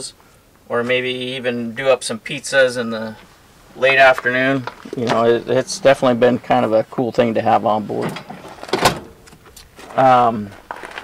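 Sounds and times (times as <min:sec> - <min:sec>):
metal oven door latching: 0:08.0 - 0:09.3.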